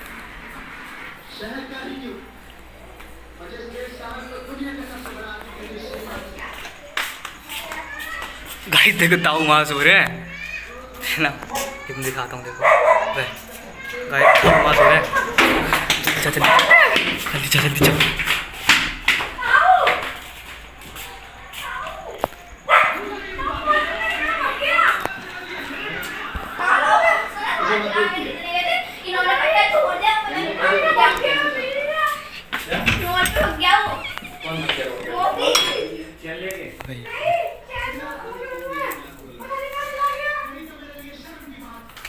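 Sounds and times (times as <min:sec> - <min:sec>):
children chattering excitedly: 0:04.1 - 0:42.0
child calling loudly: 0:10.1 - 0:10.9.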